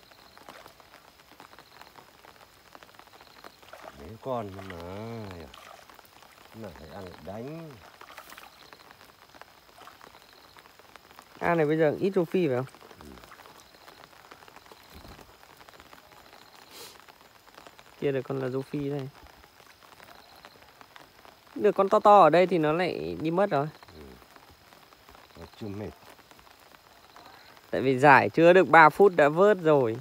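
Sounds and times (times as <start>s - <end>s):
soft hiss: 0.0s - 30.0s
water dripping from net: 0.0s - 30.0s.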